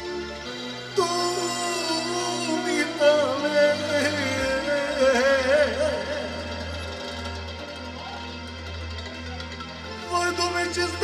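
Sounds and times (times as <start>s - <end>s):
person singing with vibrato: 0.0s - 7.5s, 10.0s - 11.0s
electronic keyboard: 0.0s - 11.0s.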